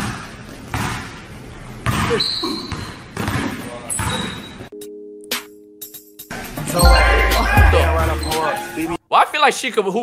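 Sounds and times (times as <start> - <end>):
basketball bouncing on gym floor: 0.0 - 1.2, 1.8 - 4.3.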